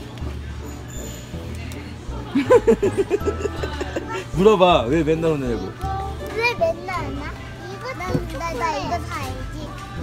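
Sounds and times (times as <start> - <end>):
background music: 0.0 - 10.0
little girl chattering sing-song: 5.4 - 10.0.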